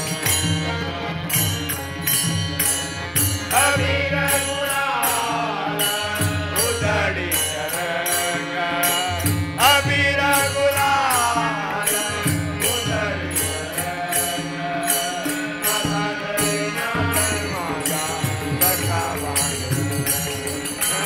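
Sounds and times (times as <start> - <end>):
group of men singing: 0.0 - 21.0
hand percussion beat: 0.0 - 21.0
harmonium drone: 0.0 - 21.0.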